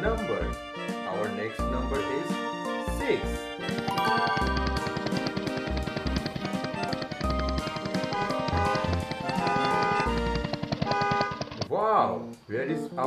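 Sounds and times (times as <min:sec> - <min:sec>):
upbeat music with drums and bass: 0:00.0 - 0:10.6.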